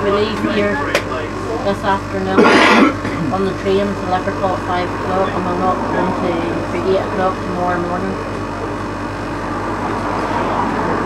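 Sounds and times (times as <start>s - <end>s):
passengers chattering: 0.0s - 11.0s
tram humming: 0.0s - 11.0s
person coughing: 2.4s - 3.5s.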